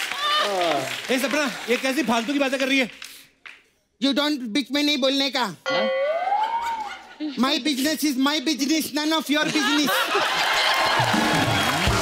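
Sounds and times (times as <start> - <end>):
audience laughing and applauding: 0.0 - 2.6, 9.3 - 12.0.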